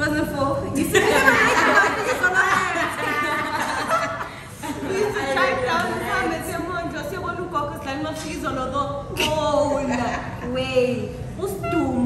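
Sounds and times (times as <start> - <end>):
woman talking: 4.8 - 12.0.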